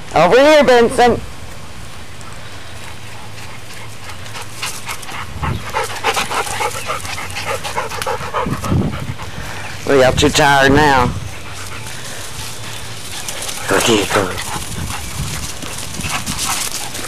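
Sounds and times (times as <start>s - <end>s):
dog panting: 2.8s - 17.0s.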